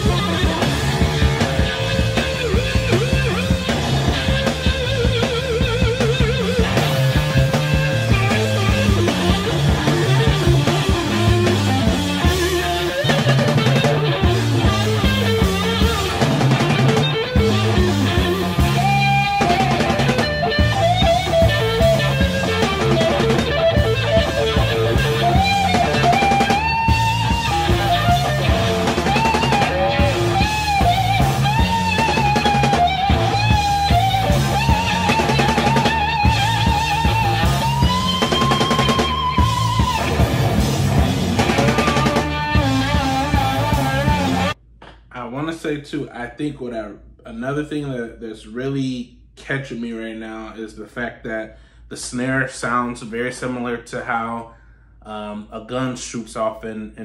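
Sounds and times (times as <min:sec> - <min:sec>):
electric guitar solo: 0:00.0 - 0:44.6
drum kit: 0:00.0 - 0:45.6.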